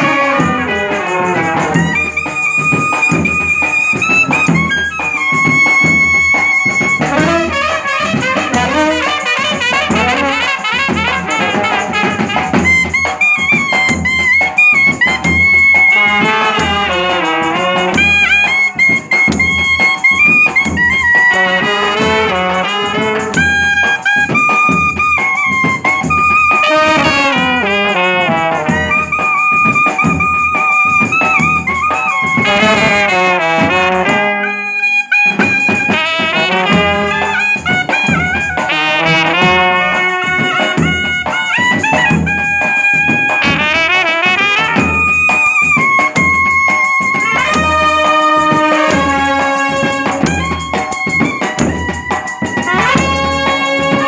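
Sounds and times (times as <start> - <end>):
bass drum and side drums: 0.0 - 34.4, 35.1 - 54.0
trumpets and clarinet melody: 0.0 - 54.0.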